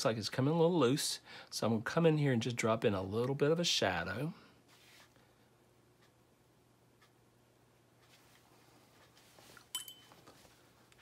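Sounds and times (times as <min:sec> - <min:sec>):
light clink with high ring: 0:09.7 - 0:10.3.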